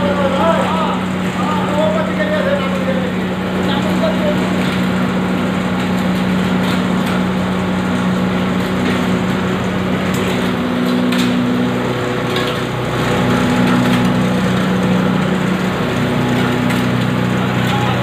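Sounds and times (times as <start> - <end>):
grinding machine droning: 0.0 - 18.0.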